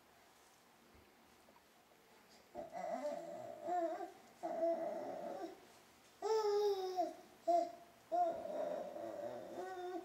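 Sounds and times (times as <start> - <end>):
baby babbling: 2.6 - 5.6, 6.2 - 10.0.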